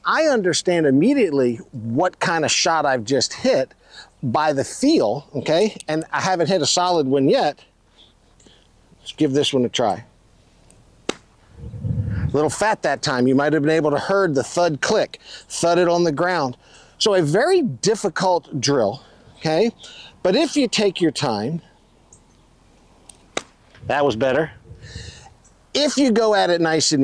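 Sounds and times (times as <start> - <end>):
man talking: 0.0 - 7.7, 9.0 - 10.1, 12.3 - 21.7, 23.8 - 27.0
low rumble: 11.5 - 12.4, 23.8 - 25.2.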